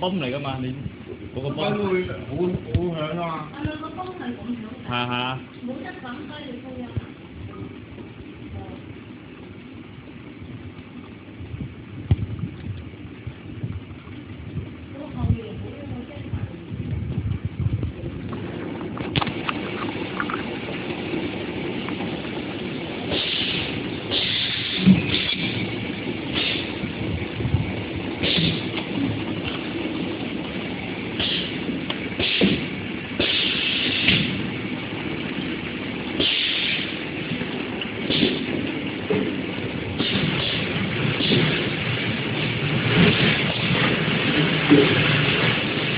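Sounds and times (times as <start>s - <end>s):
filling machine pump running: 0.0s - 45.9s
pneumatic air hisses: 23.1s - 25.6s, 26.3s - 26.8s, 28.2s - 28.7s, 31.2s - 31.6s, 32.2s - 34.3s, 36.2s - 37.0s.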